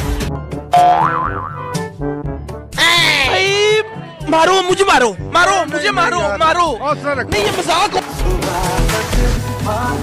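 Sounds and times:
background music with a beat: 0.0s - 5.9s, 7.4s - 10.0s
cartoon boing sound effect: 0.7s - 1.8s.

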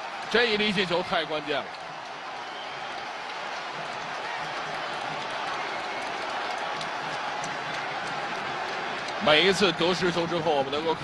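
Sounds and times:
stadium crowd cheering and applause: 0.0s - 11.0s.

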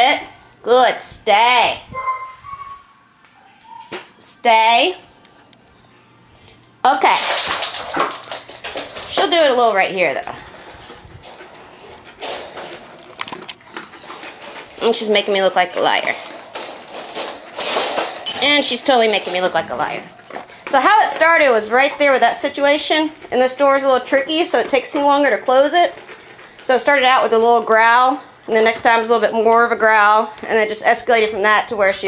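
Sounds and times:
dog whining: 1.9s - 4.2s
bowl rattling: 7.0s - 27.1s
kibble clicking in metal bowl: 7.1s - 9.6s, 11.2s - 22.8s.

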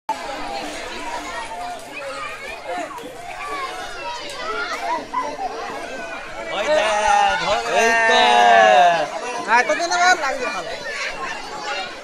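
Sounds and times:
crowd chattering: 0.1s - 12.0s.

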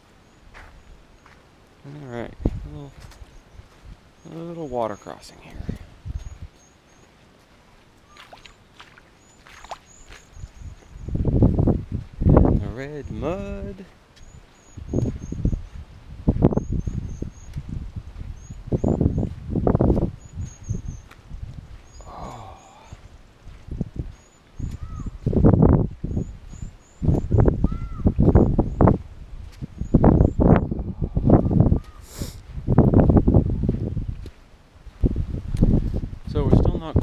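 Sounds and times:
small birds chirping: 0.0s - 11.7s, 12.4s - 32.4s
wind rumble on microphone: 1.8s - 4.1s, 5.3s - 6.6s, 9.4s - 37.0s.

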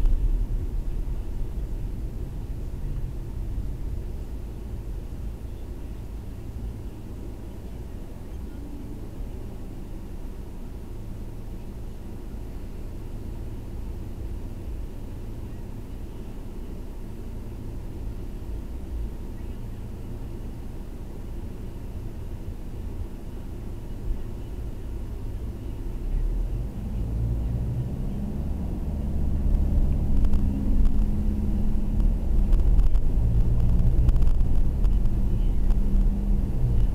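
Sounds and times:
car engine and road noise: 0.0s - 36.9s.

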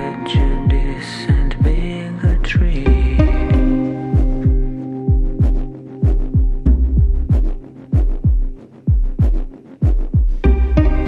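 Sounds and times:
deep thudding drum beats: 0.0s - 11.0s
steady low drone: 0.0s - 11.0s.

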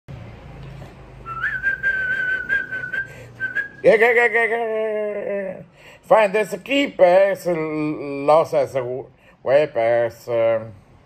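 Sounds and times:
man whistling a high note: 1.2s - 3.9s.

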